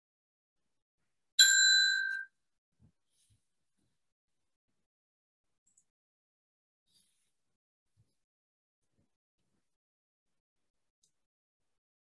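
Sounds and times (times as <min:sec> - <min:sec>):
bright bell ding: 0:01.4 - 0:02.3.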